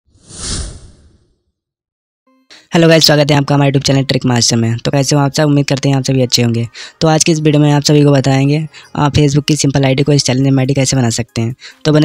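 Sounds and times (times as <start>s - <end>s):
whoosh sound effect: 0.1s - 1.4s.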